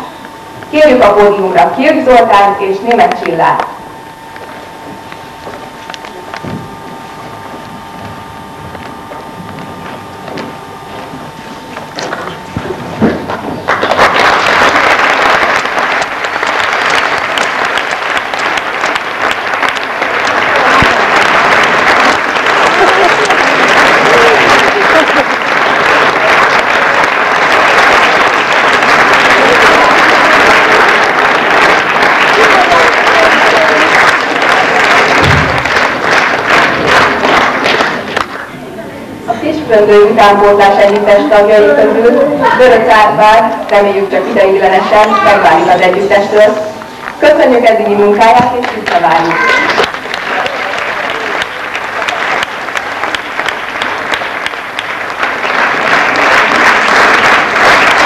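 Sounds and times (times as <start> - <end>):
audience applause: 11.7 - 38.5, 44.2 - 47.3, 48.2 - 58.0.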